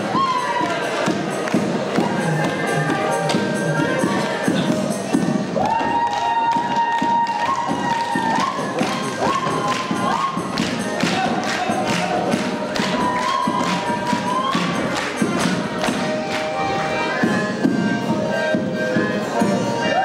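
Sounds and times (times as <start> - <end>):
folk dance music: 0.0 - 20.0.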